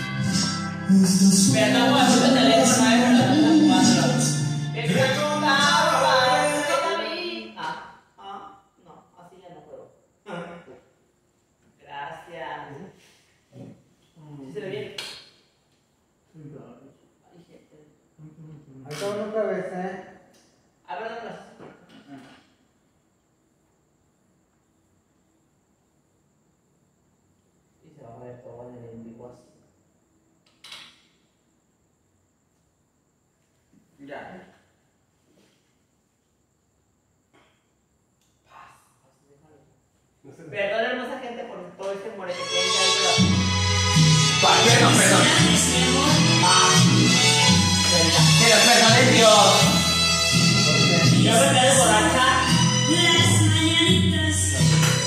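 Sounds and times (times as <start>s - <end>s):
music: 0.0s - 7.6s, 42.2s - 55.0s.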